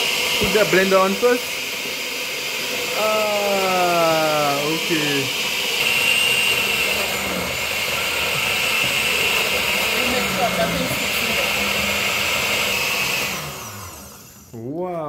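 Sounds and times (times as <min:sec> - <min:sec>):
blender running: 0:00.0 - 0:14.6.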